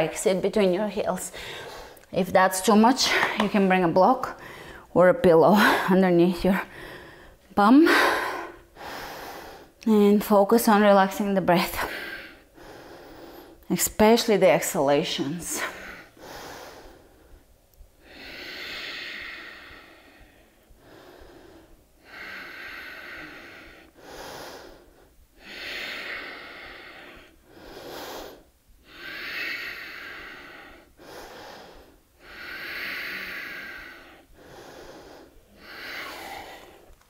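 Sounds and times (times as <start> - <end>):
woman breathing deeply: 1.3 - 2.1, 4.4 - 4.9, 6.7 - 9.8, 11.8 - 13.6, 15.6 - 37.0.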